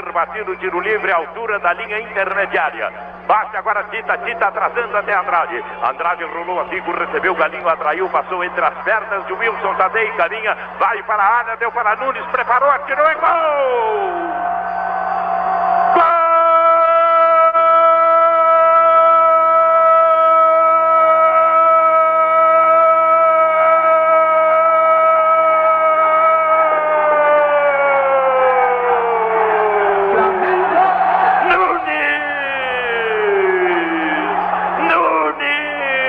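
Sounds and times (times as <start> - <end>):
sports commentator shouting: 0.0 - 14.6, 15.9 - 36.0.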